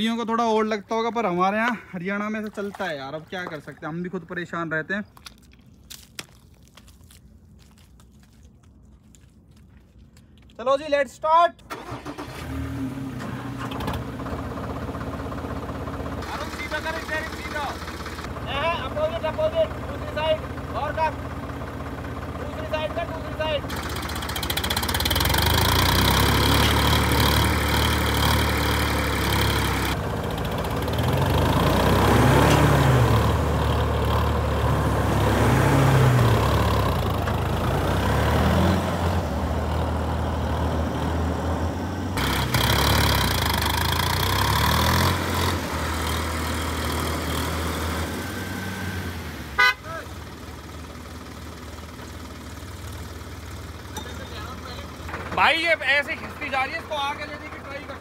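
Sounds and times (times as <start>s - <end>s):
diesel engines revving under load: 11.6s - 58.0s.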